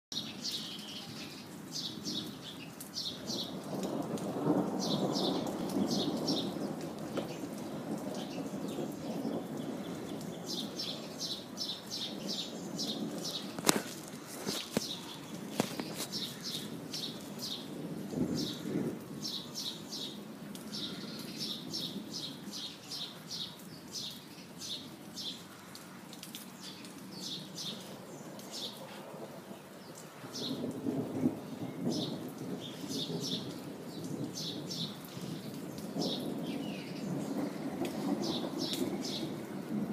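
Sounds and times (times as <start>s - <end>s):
steady rain: 0.1s - 39.9s
rolling thunder: 3.1s - 22.6s, 28.6s - 39.9s.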